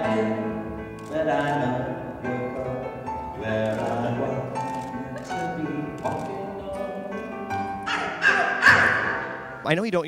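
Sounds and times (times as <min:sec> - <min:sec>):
person singing cabaret song: 0:00.0 - 0:09.2
musical accompaniment: 0:00.0 - 0:09.8.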